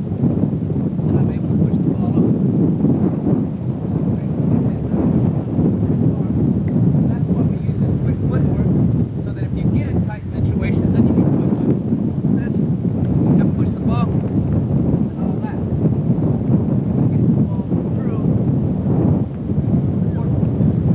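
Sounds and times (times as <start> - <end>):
wind buffeting microphone: 0.0 - 20.9.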